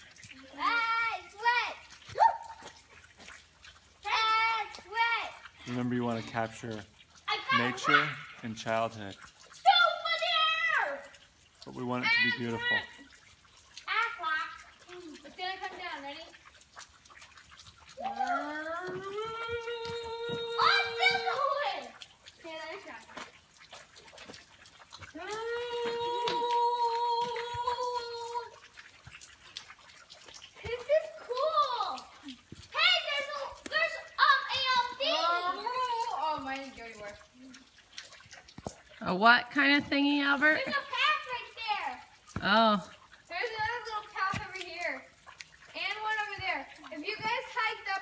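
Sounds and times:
excited talk: 0:00.4 - 0:02.6, 0:04.0 - 0:06.7, 0:07.3 - 0:09.0, 0:09.6 - 0:11.1, 0:11.7 - 0:13.1, 0:13.9 - 0:16.3, 0:18.0 - 0:23.1, 0:25.2 - 0:28.6, 0:30.6 - 0:37.5, 0:39.0 - 0:45.0.

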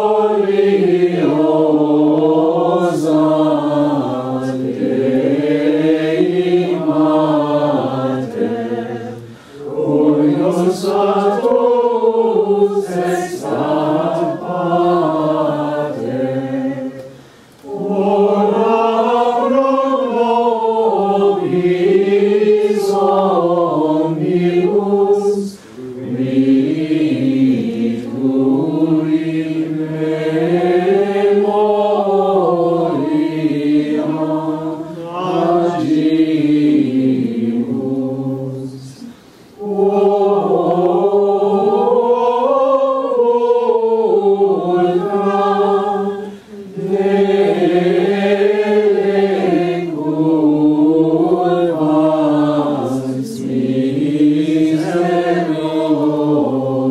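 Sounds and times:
voices singing plainchant in unison: 0:00.0 - 0:56.9.

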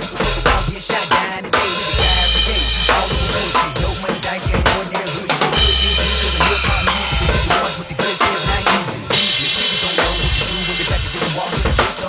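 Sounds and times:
acoustic drum kit: 0:00.0 - 0:12.0
hip hop backing track: 0:00.0 - 0:12.0
cymbal ringing: 0:05.5 - 0:10.3.

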